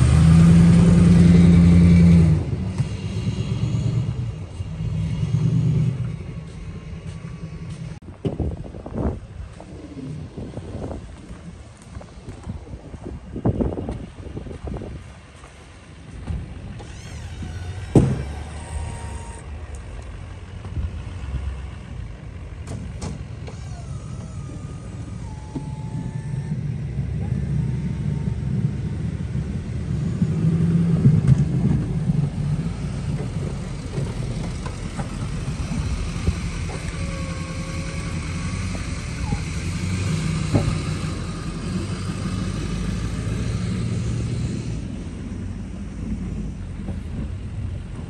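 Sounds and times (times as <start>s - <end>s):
pickup truck engine running: 0.0s - 48.0s
plow pushing snow: 0.0s - 48.0s.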